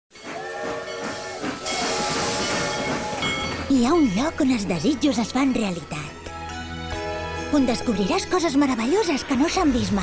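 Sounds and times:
steam locomotive venting steam: 0:00.2 - 0:03.6.

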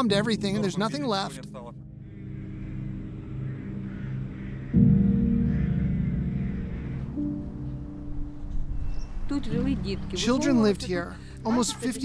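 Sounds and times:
sombre film score: 0:00.0 - 0:12.0.

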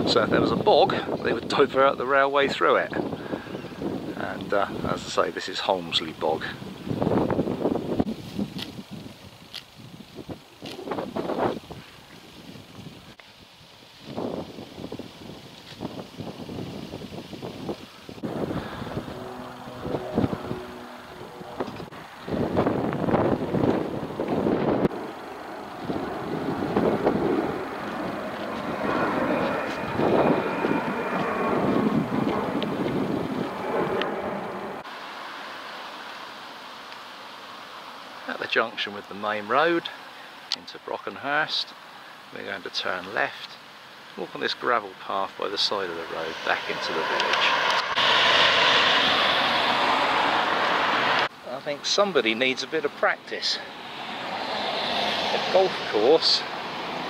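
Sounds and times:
gusty wind on microphone: 0:00.0 - 0:34.9, 0:45.4 - 0:51.4
car passing by: 0:18.2 - 0:23.5, 0:24.7 - 0:36.2, 0:45.4 - 0:57.0.

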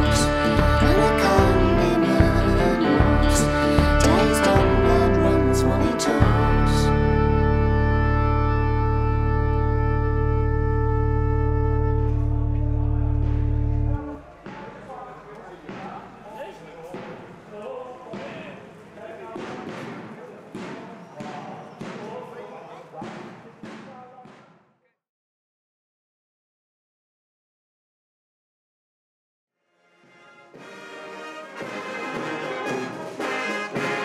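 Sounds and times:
sustained song chord: 0:00.0 - 0:14.2
steady low drone: 0:00.0 - 0:14.3
brass band playing: 0:00.0 - 0:14.4, 0:29.8 - 0:34.0
bass drum beating: 0:00.0 - 0:14.8
crowd voices: 0:11.5 - 0:24.2.

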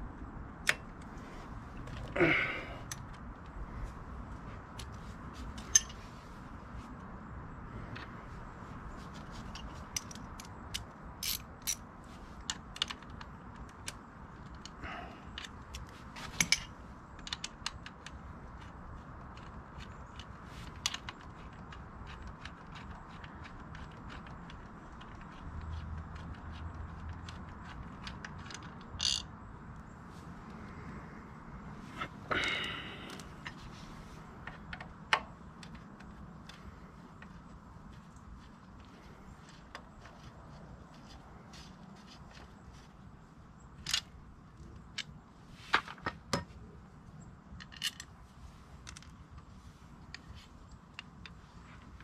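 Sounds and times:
tools clicking and clinking: 0:04.8 - 0:06.0, 0:09.1 - 0:29.3, 0:43.8 - 0:46.6, 0:47.5 - 0:48.2
hand tools clicking: 0:09.5 - 0:11.8.

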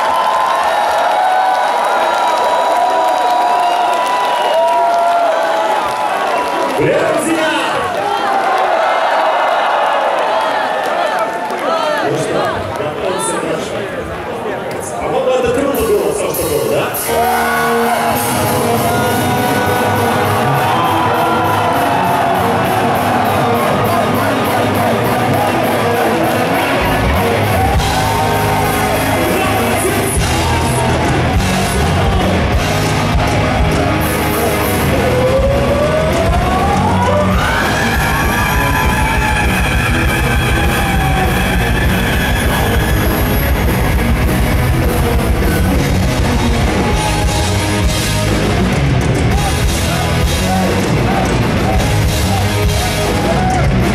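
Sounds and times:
heavy metal band playing live: 0:15.7 - 0:53.9
drums with cymbal beat: 0:15.8 - 0:53.9
electric guitars: 0:15.8 - 0:53.9.

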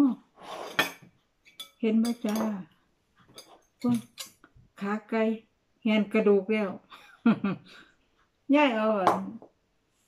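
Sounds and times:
metal spoon clinking on dishes: 0:00.7 - 0:02.6, 0:03.3 - 0:04.5.

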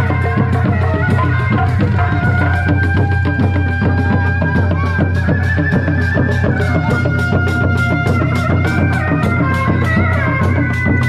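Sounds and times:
hand drums fast beat: 0:00.0 - 0:11.0
wavering reed melody: 0:00.0 - 0:11.0.

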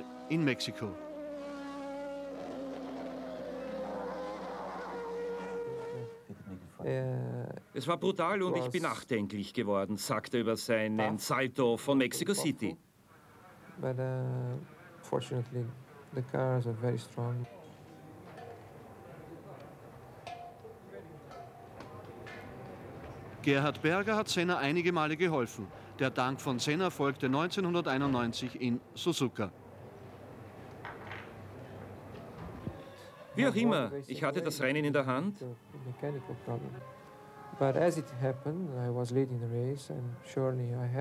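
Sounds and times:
race car engine at high revs: 0:00.0 - 0:06.2.

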